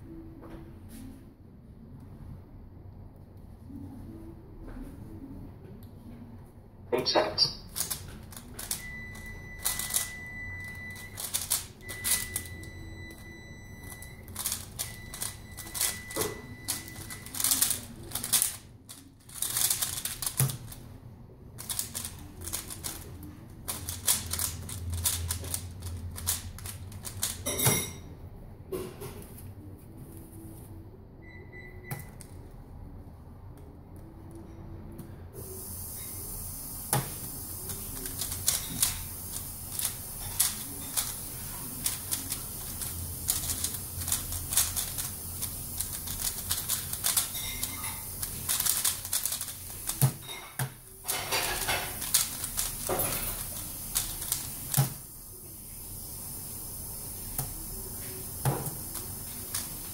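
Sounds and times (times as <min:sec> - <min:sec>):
puzzle cube clicking: 0:07.4 - 0:08.8, 0:11.2 - 0:12.4, 0:14.3 - 0:16.0, 0:16.7 - 0:20.8, 0:21.6 - 0:23.1, 0:23.7 - 0:27.4, 0:41.8 - 0:47.7, 0:48.5 - 0:50.2, 0:52.0 - 0:52.9
steady hiss: 0:35.4 - 0:59.9.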